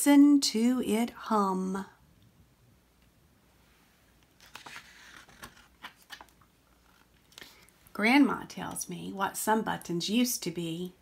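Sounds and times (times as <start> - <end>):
book pages turning: 4.2 - 7.7.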